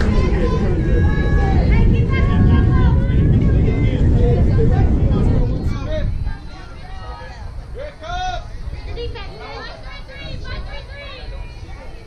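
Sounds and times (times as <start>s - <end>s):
steady low rumble: 0.0s - 11.5s
spectators calling out and chattering: 0.0s - 12.0s.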